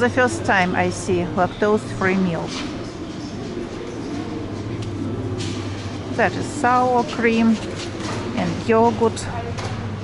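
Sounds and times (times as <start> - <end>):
store background hum and rumble: 0.0 - 10.0.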